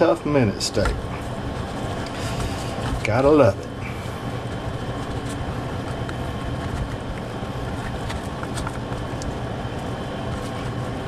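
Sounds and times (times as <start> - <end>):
low hum with hiss: 0.0 - 11.0.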